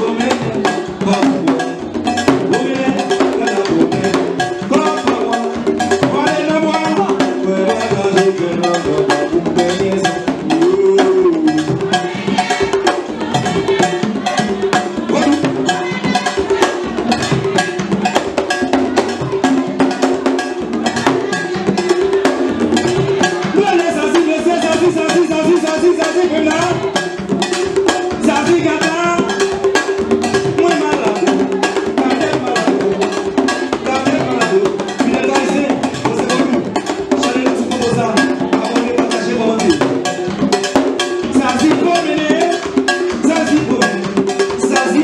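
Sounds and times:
drums: 0.0 - 45.0
person singing: 0.0 - 45.0
sharp struck percussion beats: 0.0 - 45.0.

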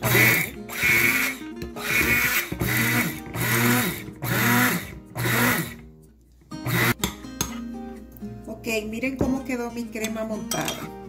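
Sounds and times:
immersion blender whipping cream: 0.0 - 5.8, 6.6 - 7.0.

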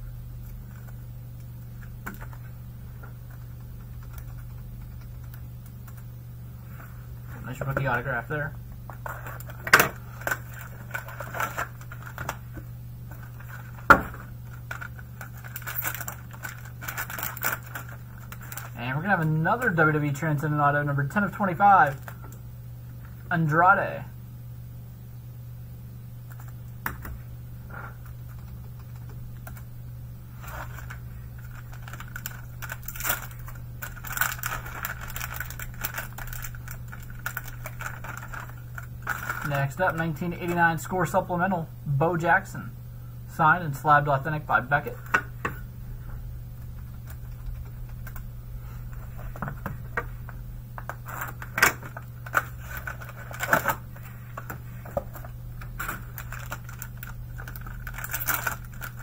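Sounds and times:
plastic bag crinkling: 8.9 - 20.4, 30.3 - 40.9, 46.6 - 59.0.

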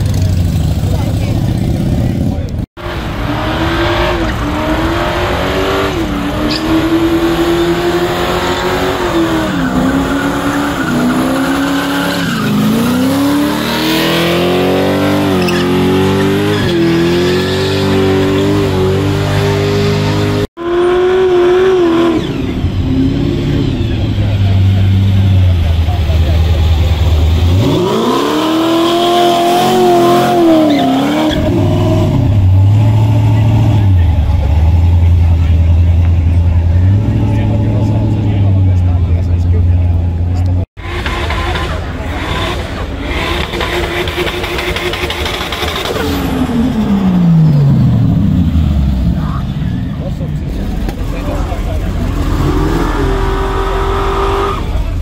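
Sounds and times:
car engine revving hard: 2.8 - 38.9, 40.7 - 49.0, 50.6 - 55.0
car engine low rumble: 21.5 - 28.8, 31.2 - 55.0.

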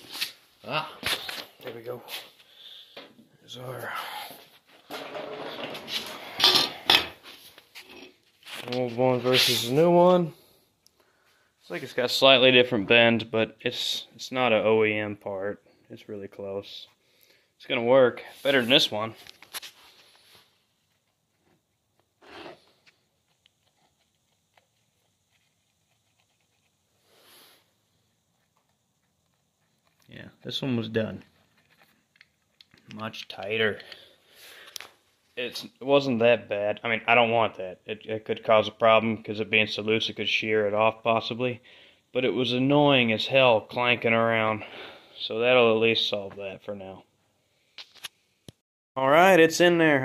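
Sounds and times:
soft scuffs: 0.0 - 2.5, 7.2 - 9.9.

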